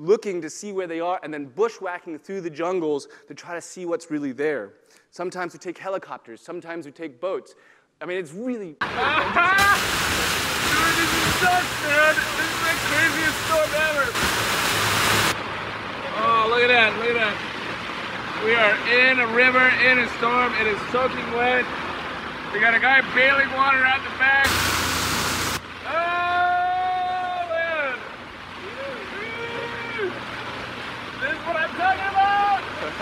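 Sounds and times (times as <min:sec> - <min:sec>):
excited voices: 0:08.8 - 0:14.2, 0:25.8 - 0:30.3, 0:31.2 - 0:33.0
heavy rain on plastic tarp: 0:08.8 - 0:19.3, 0:24.4 - 0:26.1
boat noise: 0:08.8 - 0:33.0
men whooping: 0:08.9 - 0:09.9, 0:10.7 - 0:14.2, 0:25.8 - 0:30.2, 0:31.4 - 0:33.0.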